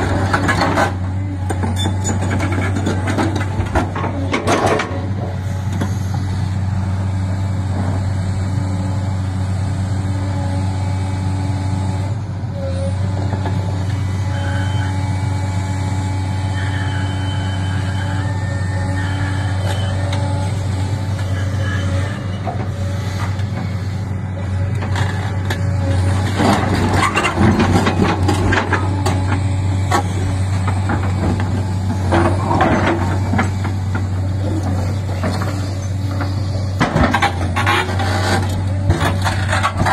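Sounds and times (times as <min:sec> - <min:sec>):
excavator diesel engine droning: 0:00.0 - 0:39.9.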